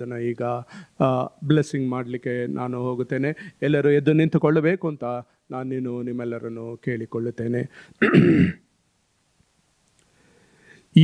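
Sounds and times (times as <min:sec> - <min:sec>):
man clearing throat: 0:08.0 - 0:08.7.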